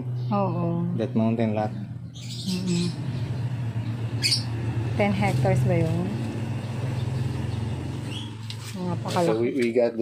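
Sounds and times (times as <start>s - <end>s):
low mechanical hum: 0.0s - 9.5s
high bird chirp: 1.7s - 8.6s.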